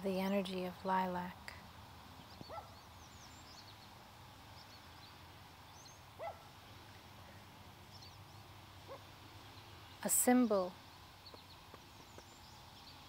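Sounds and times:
birds chirping: 0.0 - 13.0
low steady hum: 0.0 - 13.0.

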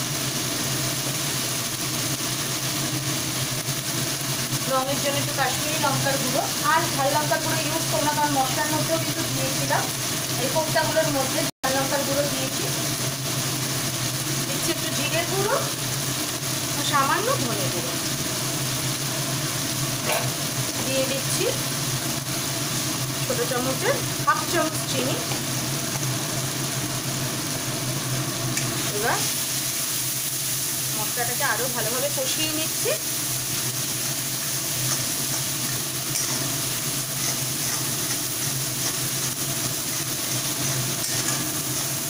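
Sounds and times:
spices sizzling in hot oil: 0.0 - 42.0.

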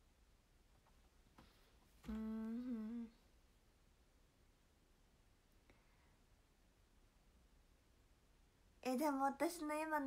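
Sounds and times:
woman humming: 2.0 - 3.3.

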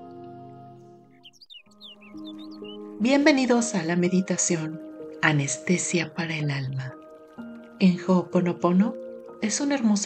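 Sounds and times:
soft meditation music: 0.0 - 10.0
bird chirps: 1.0 - 3.0.

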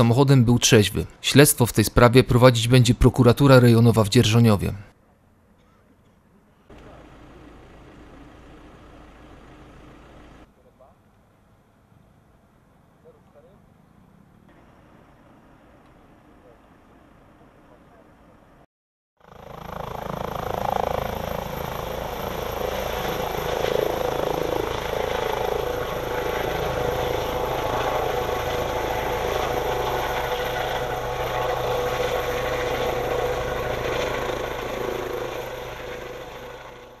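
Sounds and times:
helicopter rotor and turbine: 6.7 - 10.5, 19.2 - 37.0.

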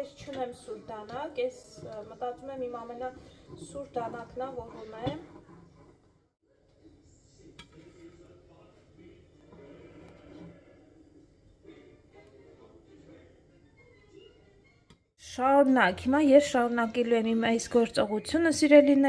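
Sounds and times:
faint background music: 0.0 - 19.0
muffled voices: 6.6 - 14.5.

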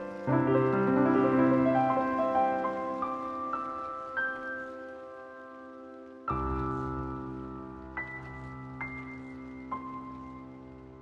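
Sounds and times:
faint rain: 0.0 - 11.0
piano chord and notes: 0.0 - 11.0.

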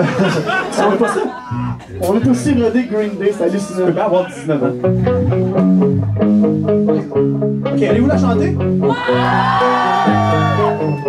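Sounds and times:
electric guitar picking notes: 4.6 - 11.0.

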